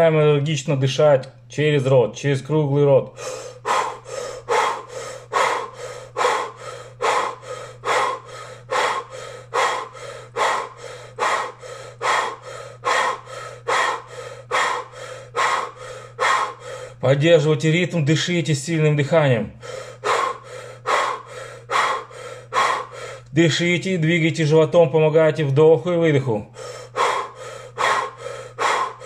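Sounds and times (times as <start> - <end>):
low steady hum: 0.0 - 29.0
man breathing forcefully: 3.1 - 17.0, 19.5 - 23.4, 26.5 - 29.0.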